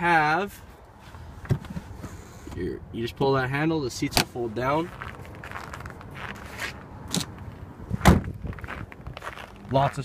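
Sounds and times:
loud thump: 8.0s - 8.4s.

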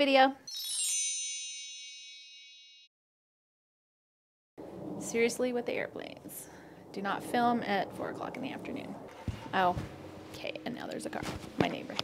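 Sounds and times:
sparkling chime: 0.5s - 2.9s.

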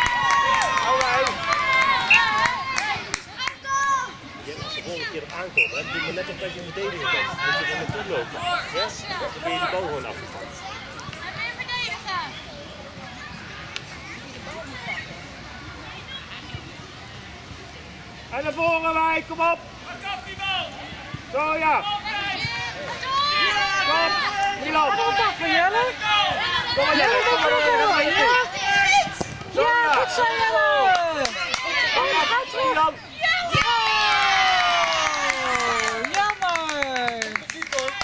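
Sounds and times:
children cheering and shouting: 0.0s - 4.9s, 22.1s - 25.2s, 26.0s - 36.0s.

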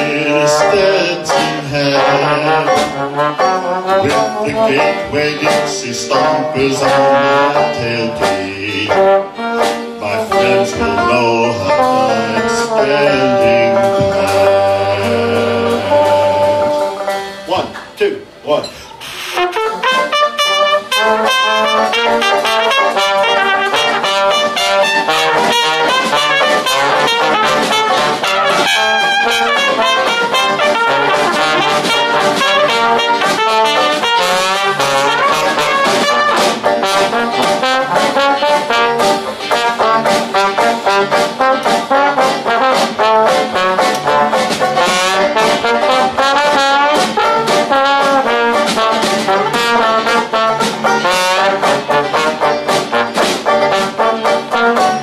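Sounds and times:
dixieland jazz band: 0.0s - 17.6s, 19.0s - 55.0s.

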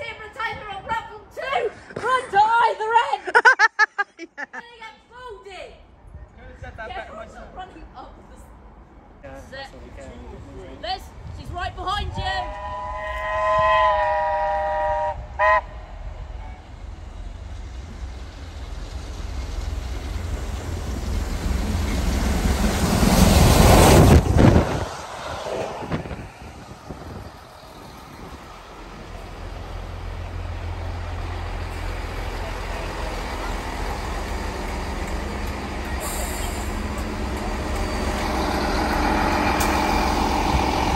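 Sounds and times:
passenger train passing: 4.7s - 40.9s
train horn: 12.4s - 16.7s.

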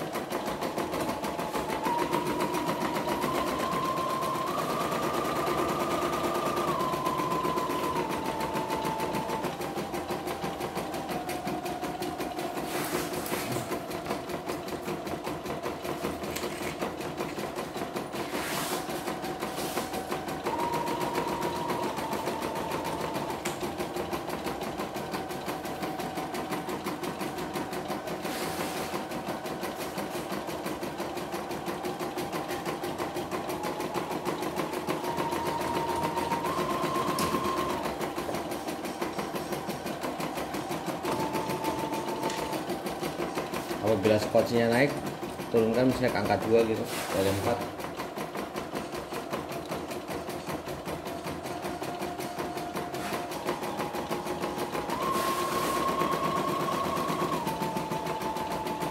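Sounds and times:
embroidery machine stitching: 0.0s - 58.9s.

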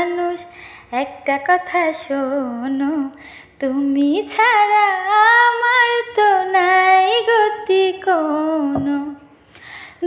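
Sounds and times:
woman singing unaccompanied: 0.0s - 9.3s.

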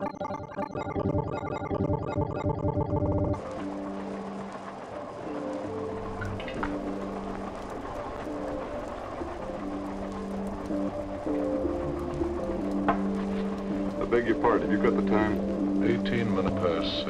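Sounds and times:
modular synthesizer notes: 0.0s - 17.0s.

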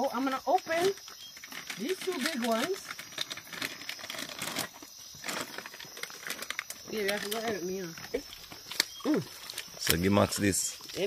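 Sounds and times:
plastic packaging crinkling and tearing: 1.4s - 7.5s.

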